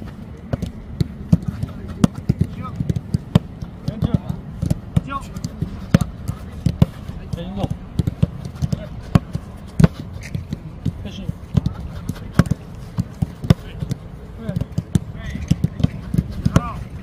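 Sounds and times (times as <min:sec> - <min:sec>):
boots kicking football: 0:00.0 - 0:17.0
players shouting: 0:01.4 - 0:10.0, 0:10.6 - 0:17.0.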